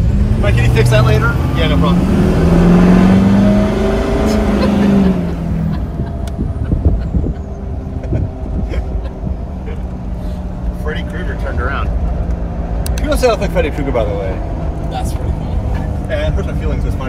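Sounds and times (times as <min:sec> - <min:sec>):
engine drone inside car: 0:00.0 - 0:17.0
road noise rumble: 0:00.0 - 0:17.0.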